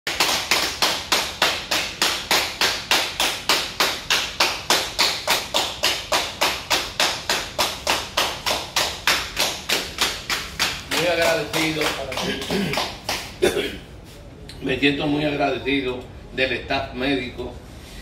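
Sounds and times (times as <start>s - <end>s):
people clapping in rhythm: 0.1s - 13.5s.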